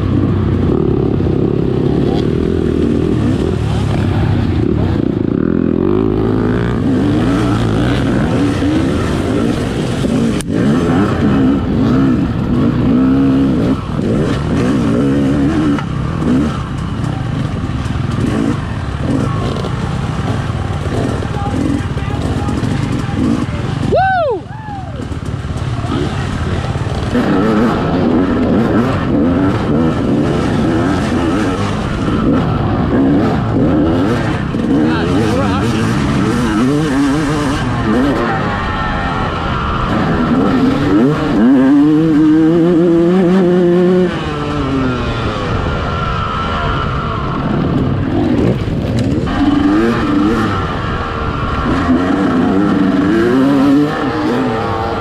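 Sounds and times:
dirt bike engine revving: 0.0s - 55.0s
other dirt bikes running: 0.0s - 55.0s.

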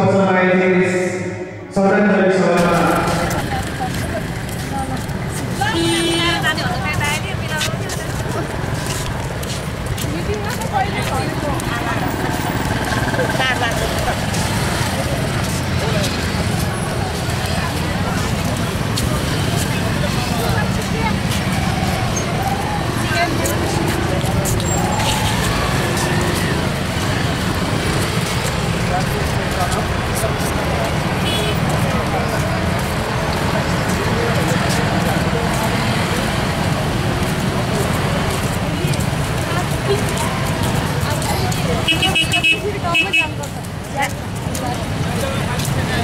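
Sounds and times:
many people talking: 0.0s - 46.0s
road traffic noise: 0.0s - 46.0s.

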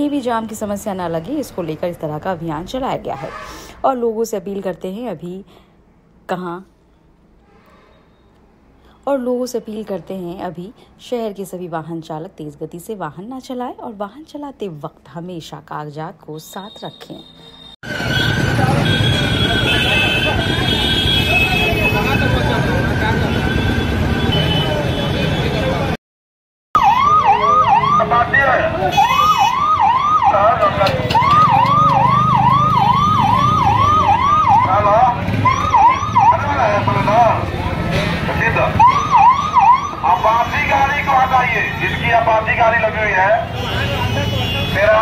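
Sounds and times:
busy street noise: 0.0s - 26.0s, 26.8s - 45.0s
police siren yelping: 26.8s - 37.4s, 38.4s - 41.7s.

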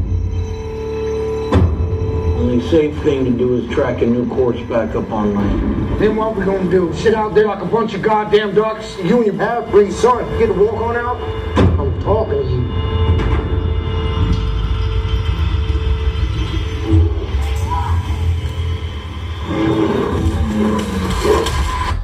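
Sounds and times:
tense trailer music: 0.0s - 22.0s
indistinct voices: 2.2s - 13.4s, 15.6s - 22.0s.

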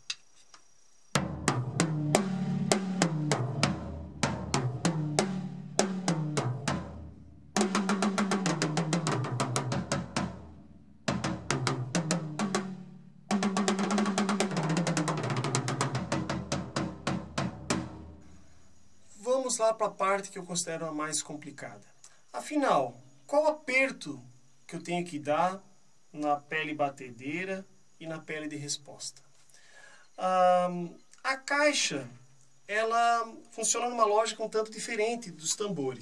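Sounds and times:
drum toms played in runs: 1.2s - 7.0s, 7.6s - 10.4s, 11.1s - 18.0s.

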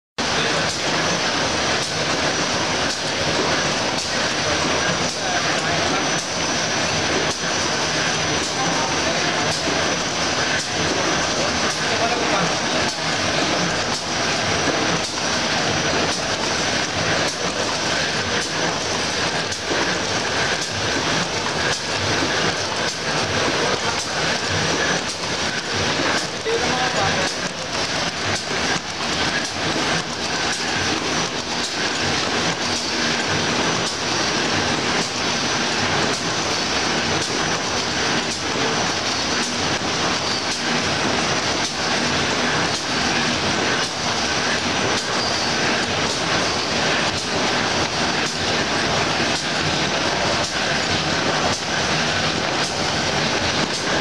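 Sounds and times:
loud mechanical din: 0.2s - 54.0s.

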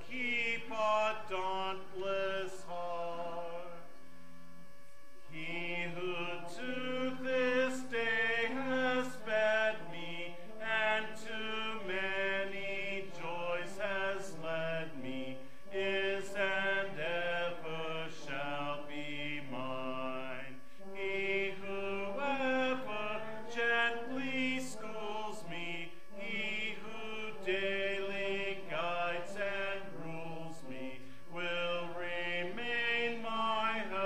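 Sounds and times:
congregation singing a hymn: 0.0s - 4.0s, 4.6s - 34.0s.

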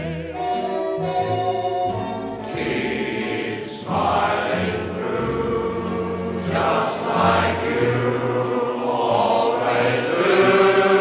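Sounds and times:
choir singing sustained chords: 2.2s - 11.0s.

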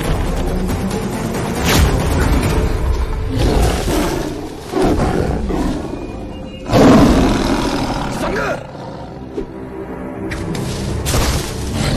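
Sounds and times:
background music: 0.0s - 11.9s
tiger roaring and snarling: 3.2s - 6.0s, 6.6s - 9.4s.

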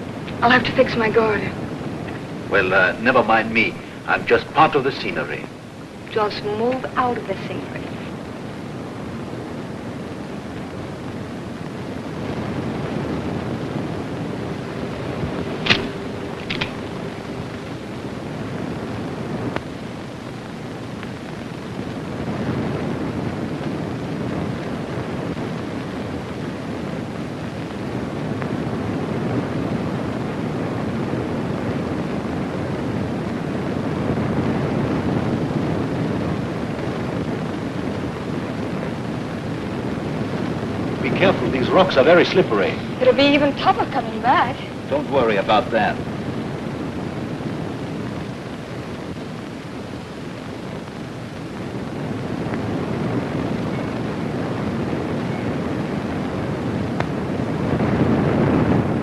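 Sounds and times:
sharp clicks: 15.6s - 16.8s.

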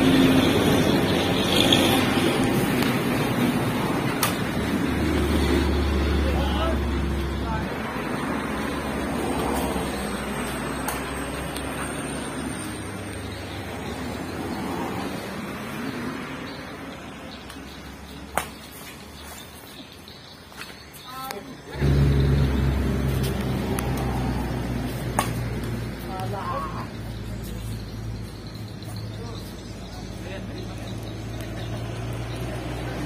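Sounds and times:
road vehicle rumbling past: 0.0s - 18.3s, 21.6s - 33.0s
racket hitting shuttlecock: 4.0s - 4.6s, 10.8s - 11.9s, 18.3s - 18.7s, 24.8s - 25.8s
people talking: 6.1s - 7.9s, 21.0s - 21.8s, 25.6s - 33.0s.

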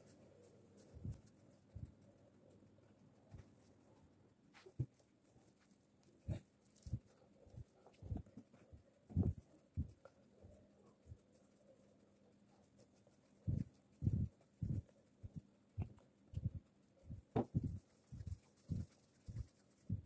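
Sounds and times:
patties patted by hand: 13.5s - 20.0s.

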